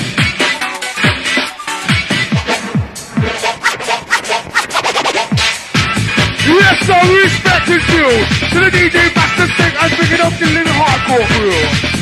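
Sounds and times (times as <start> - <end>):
breakbeat rave music: 0.0 - 12.0
drum roll: 1.0 - 12.0.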